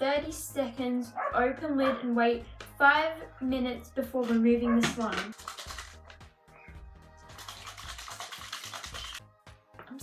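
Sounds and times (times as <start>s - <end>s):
background music: 0.0s - 10.0s
plastic container shaken rattling: 4.2s - 6.2s, 7.3s - 9.2s.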